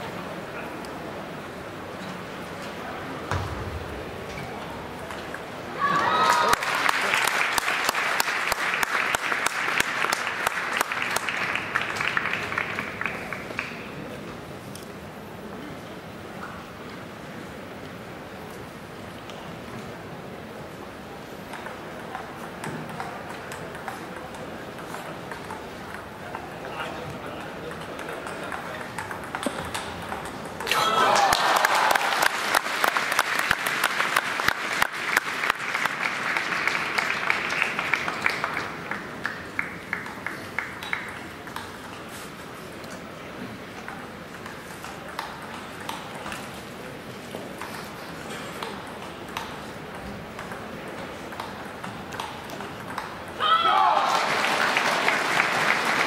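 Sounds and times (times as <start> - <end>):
murmur of arena crowd: 0.0 - 56.0
table tennis ball bouncing: 21.5 - 30.8, 43.8 - 46.6, 48.5 - 53.4
table tennis ball clicking: 27.4 - 30.7, 48.6 - 53.2.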